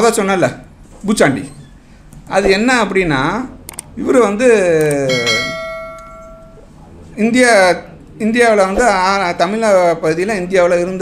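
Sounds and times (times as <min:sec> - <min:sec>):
notification bell ding: 0:05.1 - 0:06.6.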